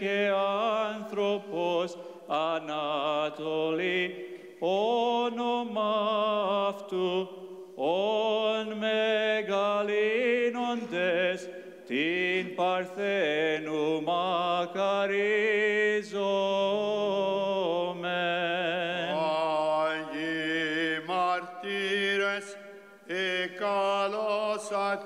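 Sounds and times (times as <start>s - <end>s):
church choir singing a hymn: 0.0s - 25.0s.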